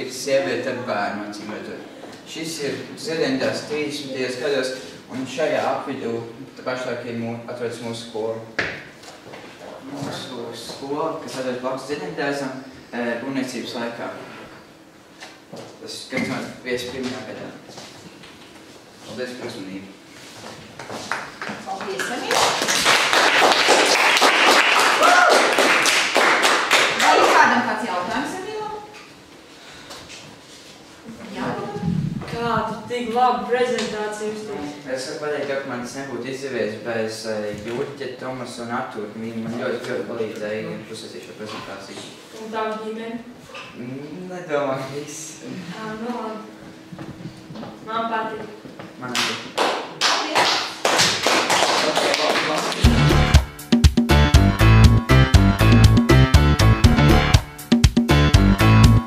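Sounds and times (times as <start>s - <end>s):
small group applauding: 21.0s - 27.7s, 49.1s - 53.1s
music with deep beat: 52.8s - 59.0s.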